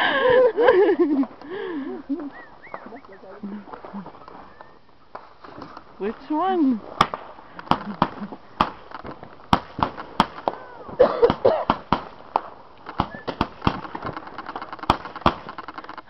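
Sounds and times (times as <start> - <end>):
fireworks cracking and popping: 2.2 - 16.0.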